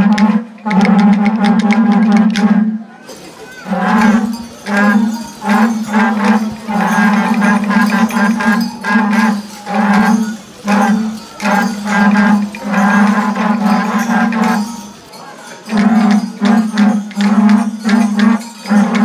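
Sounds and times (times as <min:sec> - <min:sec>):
cattle horns blowing low blasts: 0:00.0 - 0:19.0.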